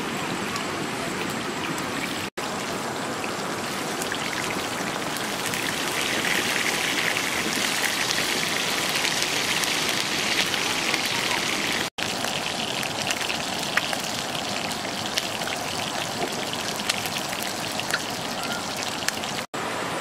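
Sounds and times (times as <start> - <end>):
meat sizzling in hot fat: 3.6 - 19.5.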